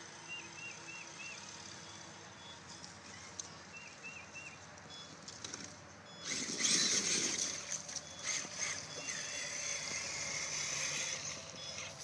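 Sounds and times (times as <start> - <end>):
electric motor whining: 6.2 - 12.0.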